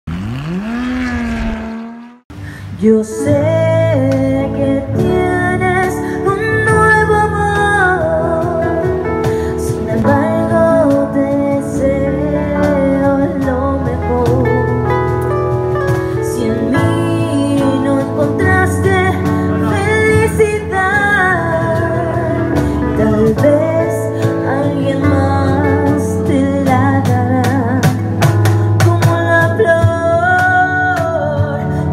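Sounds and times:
instrumental accompaniment with bass: 0:00.1 - 0:31.9
woman singing into microphone: 0:02.4 - 0:15.3, 0:16.0 - 0:31.9.

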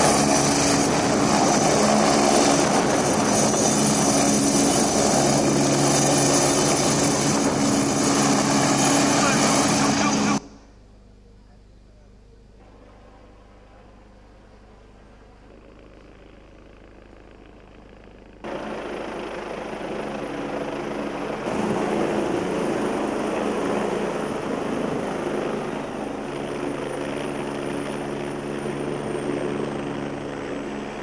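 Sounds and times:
helicopter rotor and turbine: 0:00.0 - 0:10.6, 0:14.6 - 0:31.0
high turbine whine: 0:00.0 - 0:11.0, 0:12.3 - 0:31.0.

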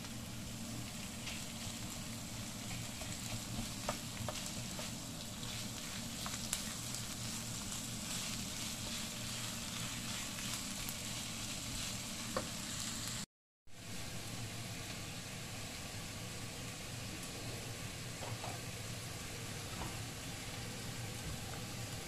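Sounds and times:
bacon and onion sizzling in pan: 0:00.0 - 0:22.0
pot boiling hiss: 0:00.0 - 0:22.0
spatula stirring in pan: 0:00.5 - 0:12.8.

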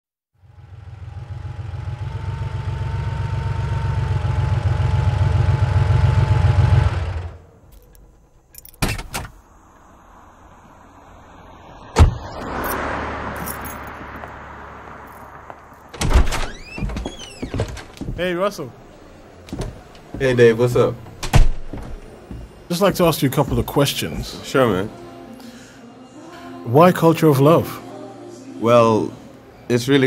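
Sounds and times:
car engine running: 0:00.4 - 0:08.5.

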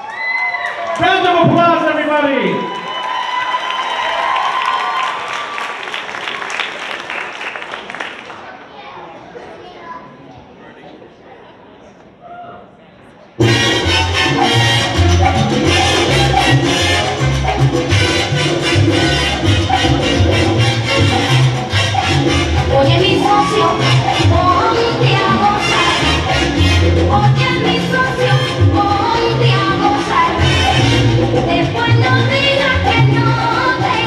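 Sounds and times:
salsa music: 0:13.4 - 0:34.0.

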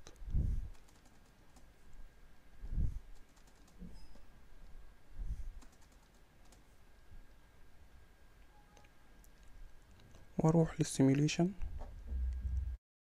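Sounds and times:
keyboard keys clicking: 0:00.7 - 0:01.7, 0:03.2 - 0:03.8, 0:05.6 - 0:06.6
soft low thumps: 0:11.6 - 0:12.8.

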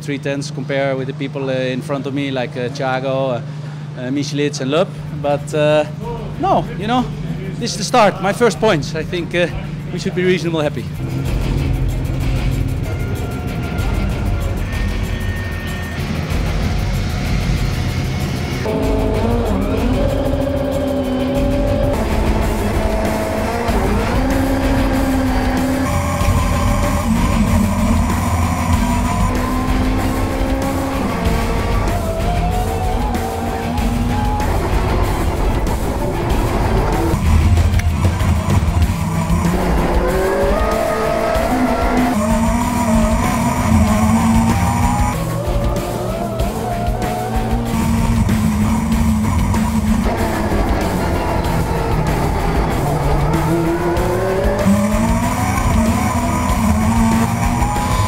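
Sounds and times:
road and tyre noise: 0:00.0 - 0:58.0
race car engine revving: 0:05.0 - 0:58.0.

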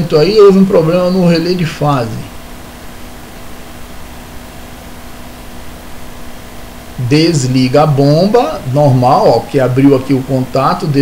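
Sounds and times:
background hiss: 0:00.0 - 0:11.0
faint low hum: 0:00.0 - 0:11.0.

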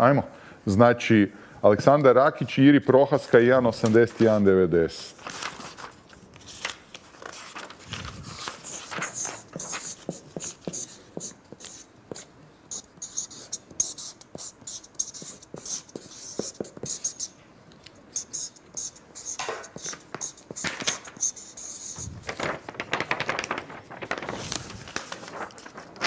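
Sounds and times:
paper rustling: 0:05.1 - 0:10.8, 0:19.2 - 0:26.0
markers scratching on paper: 0:08.2 - 0:17.4, 0:18.1 - 0:22.3.

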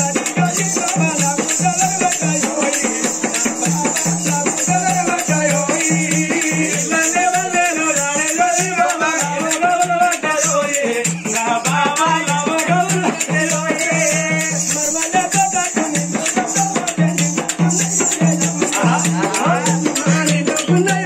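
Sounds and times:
hand drum and cymbal rattle: 0:00.0 - 0:21.0
repeating drum beat: 0:00.0 - 0:21.0.

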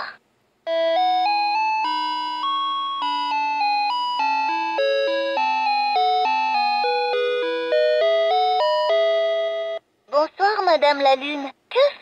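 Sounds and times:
toy playing electronic chime melody: 0:00.7 - 0:09.8.

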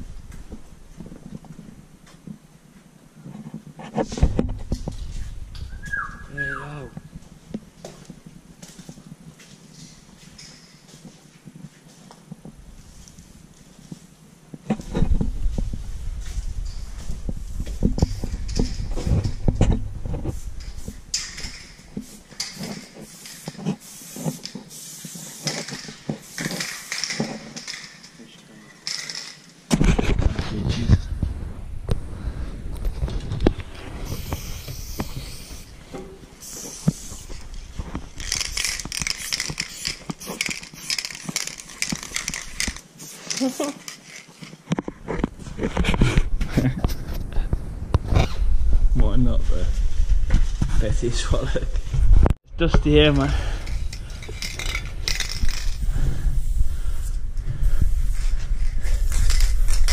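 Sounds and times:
clothing rubbing on microphone: 0:11.6 - 0:21.1, 0:29.8 - 0:40.1
heavy breathing: 0:53.2 - 0:54.8, 0:55.7 - 0:59.2.

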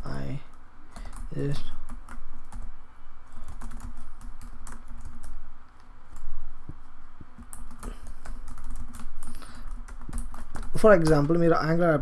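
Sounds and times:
low hum: 0:00.0 - 0:10.7
typing on computer keyboard: 0:00.9 - 0:02.7, 0:03.4 - 0:05.4, 0:07.4 - 0:11.3.

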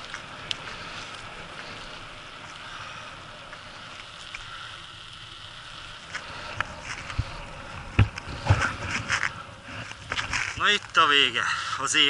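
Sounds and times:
wheels rolling on rough asphalt: 0:00.0 - 0:12.0.

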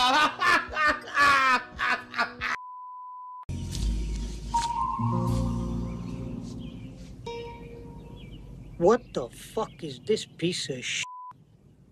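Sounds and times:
music: 0:03.5 - 0:08.2.

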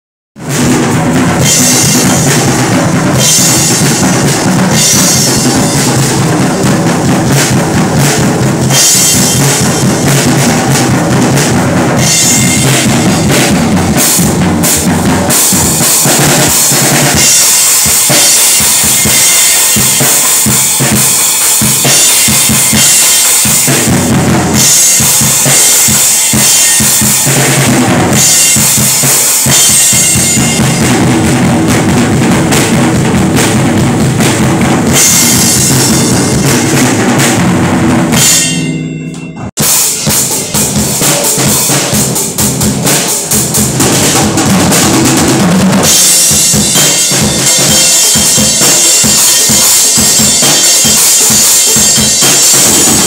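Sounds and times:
acoustic drum kit playing: 0:00.4 - 0:53.0
cymbals ringing: 0:00.5 - 0:31.6, 0:32.2 - 0:44.3, 0:45.8 - 0:53.0.

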